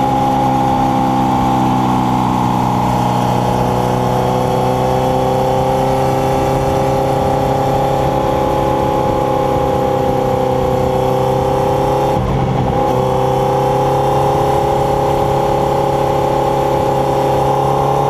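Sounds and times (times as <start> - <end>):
motorcycle engine running: 0.0 - 18.0
wind and road noise: 0.0 - 18.0.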